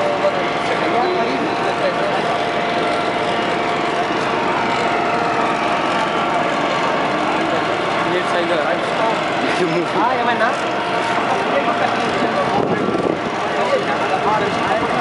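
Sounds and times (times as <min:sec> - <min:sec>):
people talking: 0:00.0 - 0:04.4, 0:06.4 - 0:15.0
vehicle engines running: 0:00.0 - 0:15.0.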